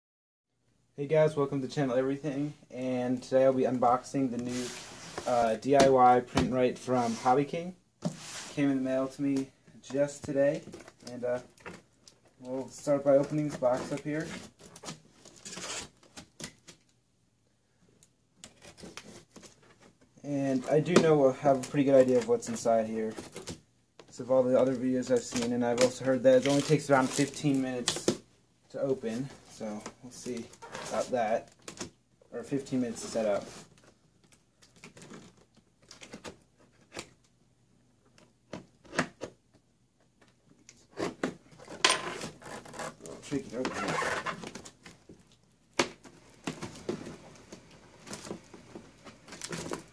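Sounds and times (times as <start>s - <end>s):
packing tape clicks and scrapes: 13.2s - 16.9s, 25.2s - 28.1s, 40.6s - 45.4s, 46.3s - 49.9s.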